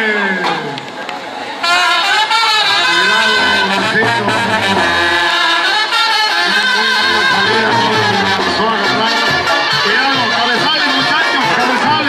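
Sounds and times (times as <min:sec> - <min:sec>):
horn melody: 0:01.6 - 0:12.0
low bass line: 0:02.9 - 0:05.5, 0:07.0 - 0:10.4.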